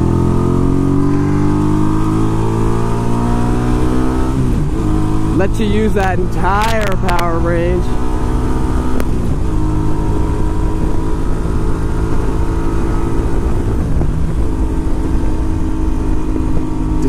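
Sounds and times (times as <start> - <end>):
motorcycle engine cruising: 0.0 - 17.0
wind rushing over microphone: 0.0 - 17.0.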